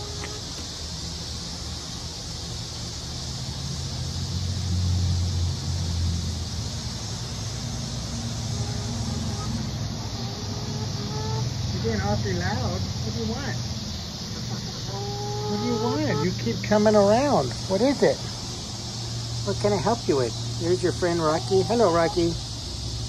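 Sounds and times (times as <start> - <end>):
chicken calling softly: 0.0 - 0.6, 8.5 - 11.9, 14.2 - 16.6, 20.6 - 22.4
low engine rumble: 2.6 - 23.0.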